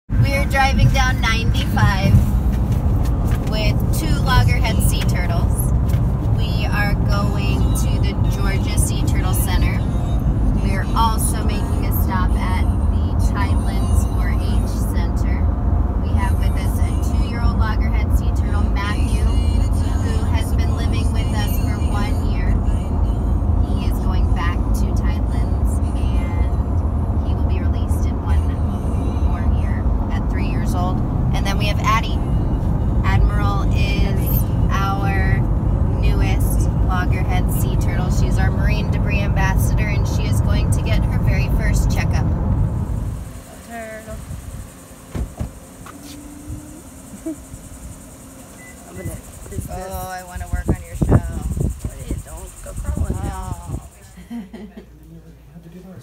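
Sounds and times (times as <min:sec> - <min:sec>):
road and engine rumble: 0:00.0 - 0:56.0
voices: 0:00.2 - 0:02.2, 0:03.3 - 0:32.4, 0:33.0 - 0:42.3, 0:43.2 - 0:56.0.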